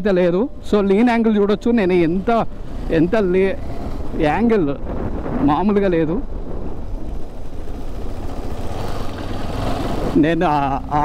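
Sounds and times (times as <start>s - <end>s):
man talking: 0.0s - 6.3s, 10.2s - 11.0s
motorcycle engine rumbling: 0.0s - 11.0s
wind noise: 0.8s - 11.0s.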